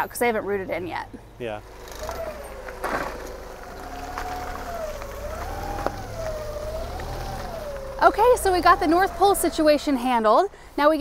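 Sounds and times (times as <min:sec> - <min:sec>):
forklift engine running: 0:00.0 - 0:11.0.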